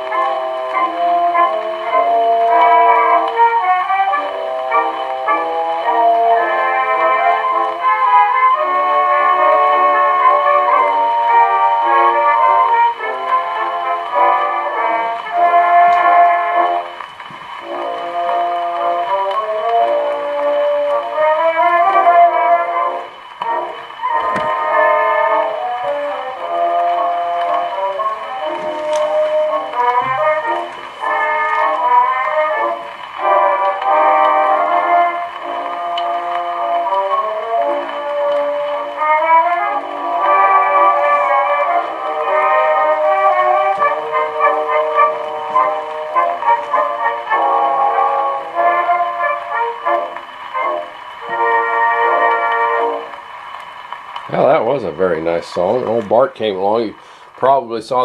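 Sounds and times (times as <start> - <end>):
thin phonograph music: 0.0 - 58.0.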